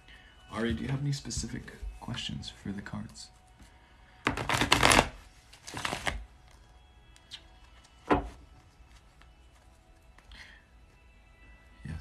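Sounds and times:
cards being riffle-shuffled: 4.3s - 6.2s.

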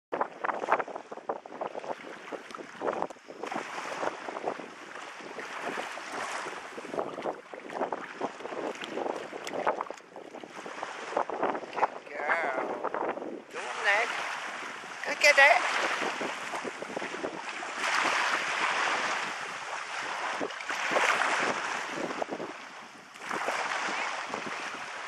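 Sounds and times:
wind buffeting microphone: 0.1s - 25.0s
small waves lapping: 0.2s - 25.0s.

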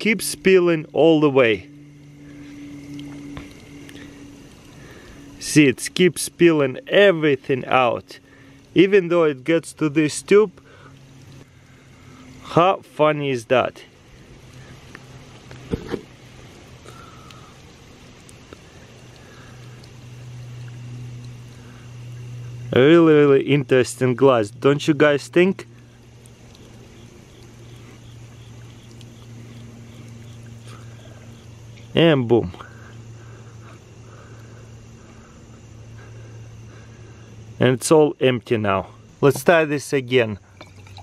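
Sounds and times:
steady low hum: 0.0s - 41.0s
liquid trickling onto concrete: 13.9s - 22.7s, 25.2s - 31.9s, 40.5s - 41.0s.

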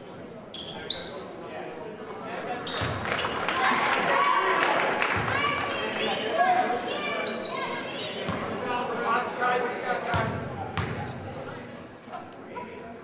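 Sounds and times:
echoing indistinct voices: 1.6s - 13.0s.

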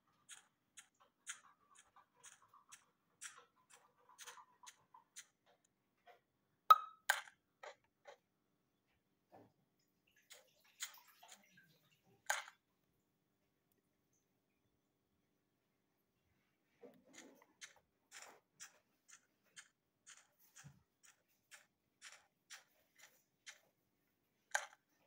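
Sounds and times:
faint clicks and taps: 0.0s - 8.3s, 8.9s - 12.7s, 16.6s - 25.0s.

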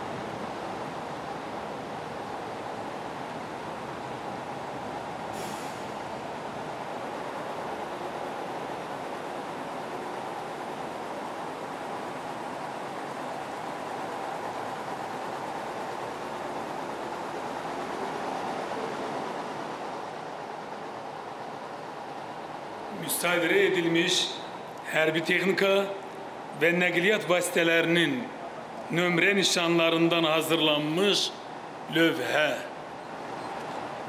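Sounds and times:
heavy trucks driving past: 0.0s - 34.0s.

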